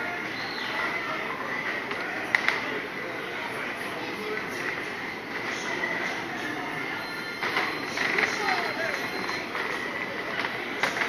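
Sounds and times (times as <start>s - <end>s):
high-pitched ride squeal: 6.9s - 10.0s.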